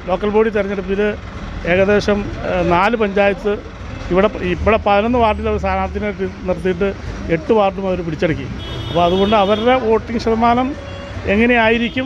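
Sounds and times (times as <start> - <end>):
man talking: 0.0 - 12.0
road traffic rumble: 0.0 - 12.0.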